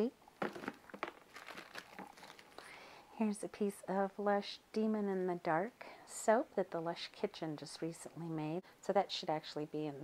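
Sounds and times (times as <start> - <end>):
plastic wrappers crinkling and clicking: 0.4 - 2.8.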